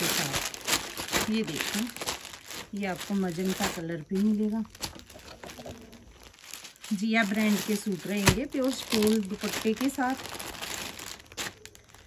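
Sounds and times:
fabric rustling: 0.0 - 12.0
plastic packaging crinkling: 0.0 - 12.0.

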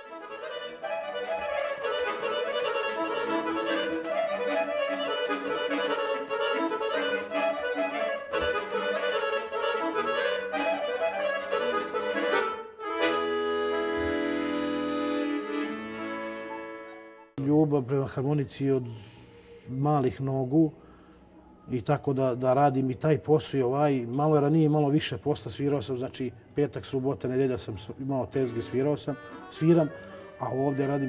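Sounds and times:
button accordion playing: 0.0 - 17.4, 28.3 - 31.0.

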